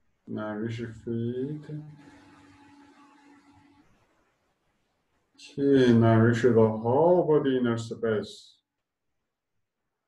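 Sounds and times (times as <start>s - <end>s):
faint steady hum: 0.0s - 8.3s.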